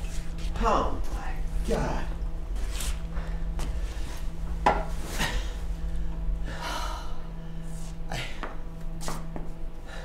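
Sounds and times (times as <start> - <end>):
person breathing heavily: 3.0 - 4.4, 5.0 - 8.7, 9.7 - 10.0.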